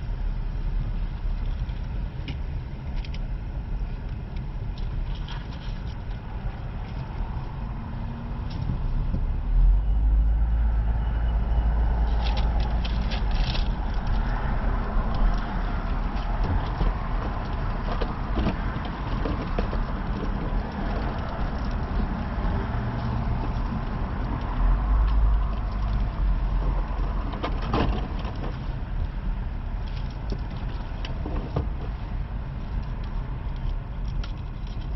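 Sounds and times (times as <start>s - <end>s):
car engine and road noise: 0.0s - 34.9s.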